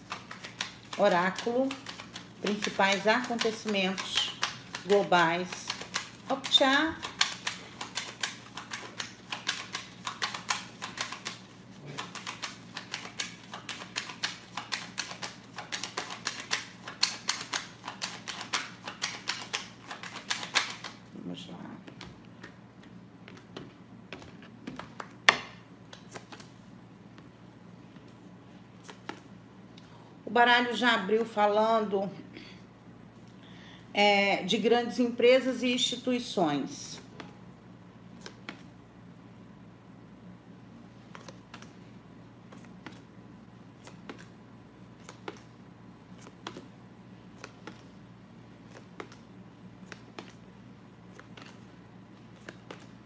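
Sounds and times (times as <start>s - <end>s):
cards being shuffled: 0.0s - 21.1s, 21.8s - 26.6s, 28.8s - 29.3s, 38.2s - 38.7s, 41.0s - 41.8s, 42.5s - 43.1s, 43.7s - 53.0s.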